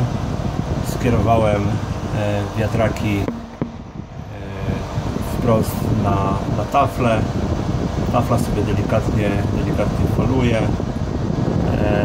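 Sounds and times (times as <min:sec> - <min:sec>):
cooling fan humming: 0:00.0 - 0:12.0.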